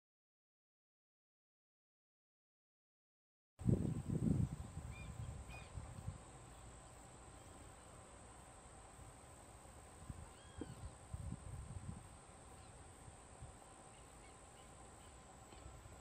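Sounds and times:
low rumbling on microphone: 0:03.6 - 0:06.5, 0:10.0 - 0:12.2
faint bird chirps: 0:04.5 - 0:08.2, 0:10.1 - 0:11.1, 0:12.4 - 0:13.0, 0:13.6 - 0:16.0
rising-and-falling bird call: 0:04.9 - 0:05.8, 0:10.2 - 0:11.0.

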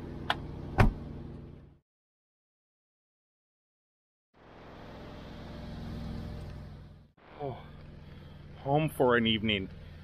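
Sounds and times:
vehicle engine humming: 0:04.4 - 0:10.0.

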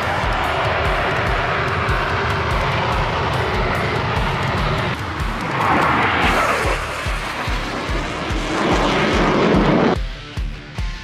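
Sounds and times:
jet passing: 0:00.0 - 0:10.0
jet engines running: 0:00.0 - 0:10.8
rock music: 0:00.0 - 0:11.0.

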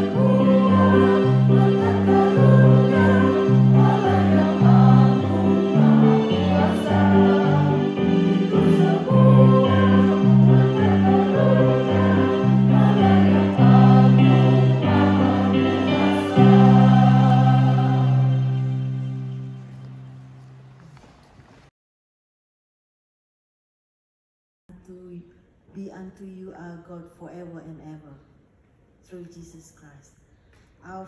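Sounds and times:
group singing a hymn: 0:00.0 - 0:19.4
instrumental accompaniment: 0:00.0 - 0:20.9.

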